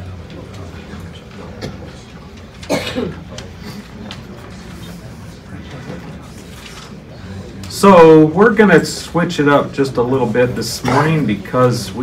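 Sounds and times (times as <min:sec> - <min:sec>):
low room noise: 0:00.0 - 0:12.0
person coughing: 0:02.7 - 0:03.3, 0:10.8 - 0:11.2.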